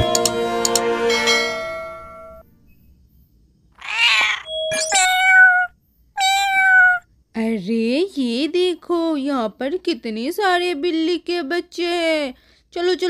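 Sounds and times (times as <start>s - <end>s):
kitten meowing: 3.8s - 7.0s.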